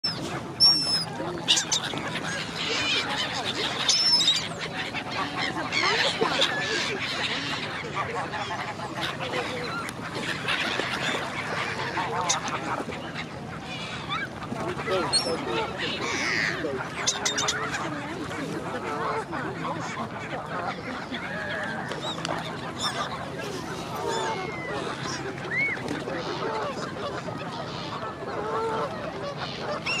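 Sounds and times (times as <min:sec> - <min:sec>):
gulls flapping and splashing: 0:00.0 - 0:30.0.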